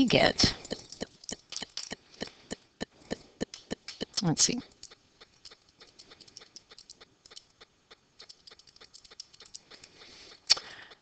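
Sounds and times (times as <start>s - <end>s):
calculator keys clicking: 0.5s - 7.6s, 8.2s - 10.0s.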